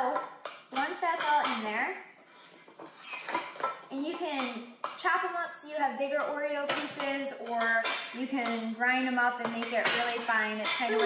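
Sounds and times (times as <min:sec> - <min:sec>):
spoon scraping in ceramic dish: 0:02.2 - 0:03.9.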